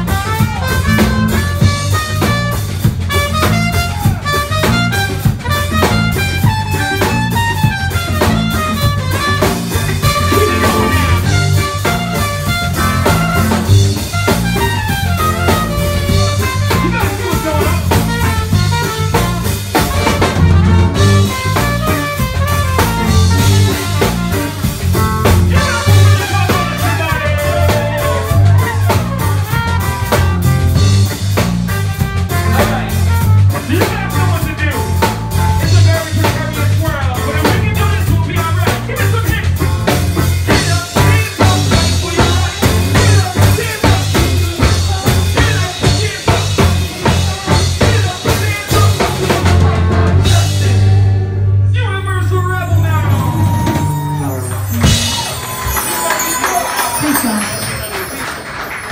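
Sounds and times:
trumpet: 0.0s - 51.2s
drum kit: 0.0s - 51.6s, 52.2s - 58.9s
electric guitar: 0.0s - 51.7s
bass: 0.0s - 58.9s.

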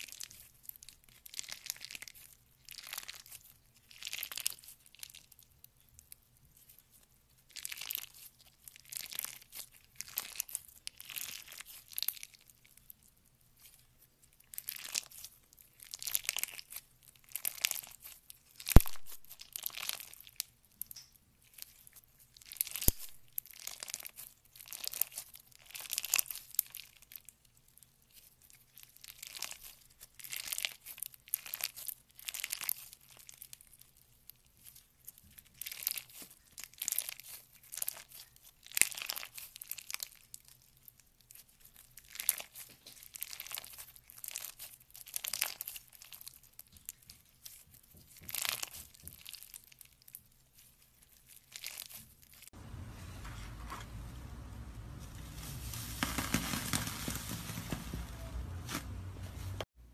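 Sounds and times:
slime crackling and crinkling: 0.0s - 59.8s.

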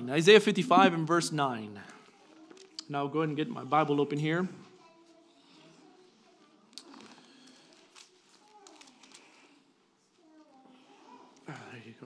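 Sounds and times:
faint background voices: 0.0s - 12.0s
pages being turned: 6.8s - 9.6s.

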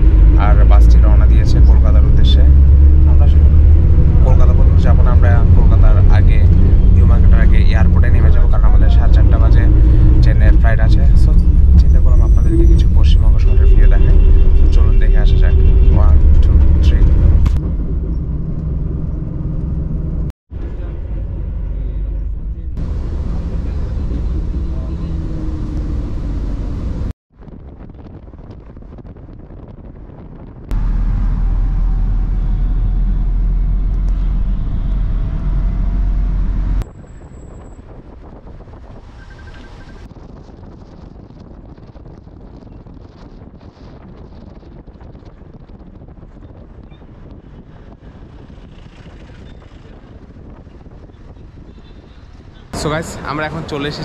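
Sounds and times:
voices: 0.0s - 3.4s, 4.2s - 17.1s
engine and road rumble: 0.0s - 54.0s.

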